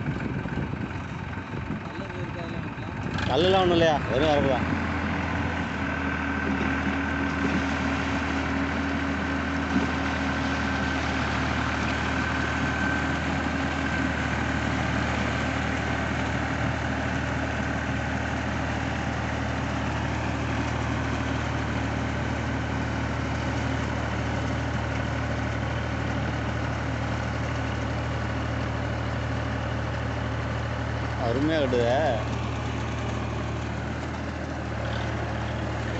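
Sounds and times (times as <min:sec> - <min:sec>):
tractor diesel engine running: 0:00.0 - 0:35.9.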